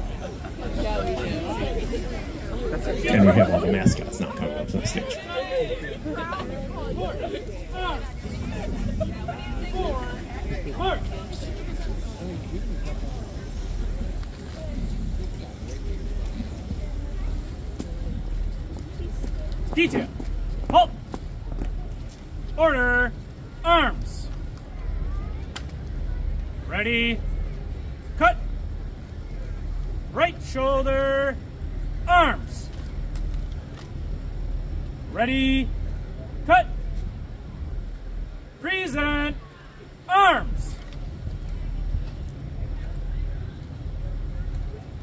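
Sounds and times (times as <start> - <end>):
crowd murmuring: 0.0 - 45.0
steady low rumble: 0.0 - 45.0.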